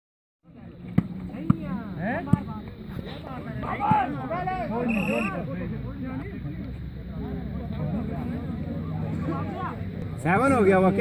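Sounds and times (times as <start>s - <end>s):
players shouting: 3.4s - 5.5s.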